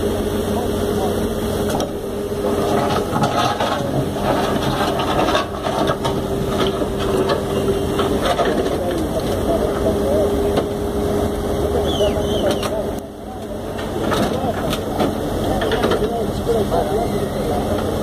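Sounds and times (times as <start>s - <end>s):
constant whine: 0.0s - 18.0s
diesel engine running: 0.0s - 18.0s.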